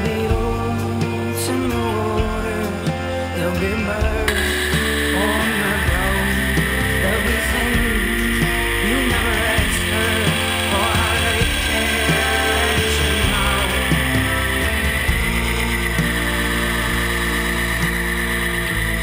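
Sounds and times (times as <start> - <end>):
music with steady beat: 0.0 - 19.0
steady high hiss: 4.3 - 19.0.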